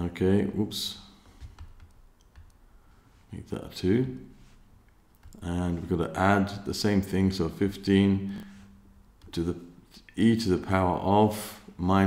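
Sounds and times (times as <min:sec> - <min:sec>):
computer mouse clicks: 0:01.4 - 0:02.6, 0:05.1 - 0:05.4.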